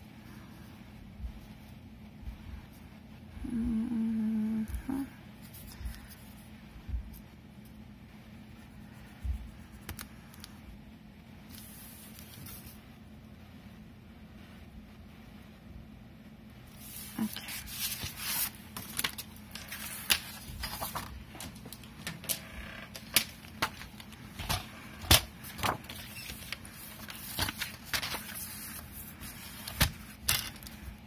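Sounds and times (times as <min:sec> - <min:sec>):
paper rustling and sliding: 0:11.5 - 0:12.8, 0:16.7 - 0:31.0.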